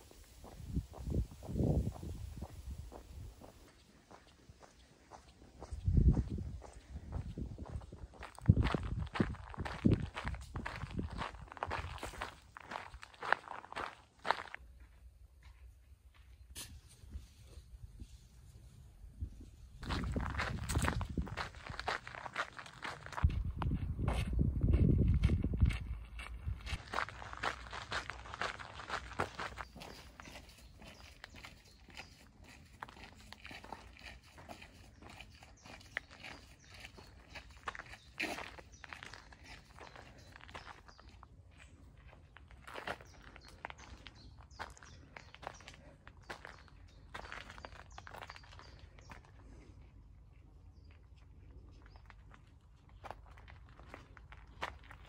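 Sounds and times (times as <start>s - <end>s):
footsteps crunching on a path: 0.0s - 16.4s, 19.4s - 55.0s.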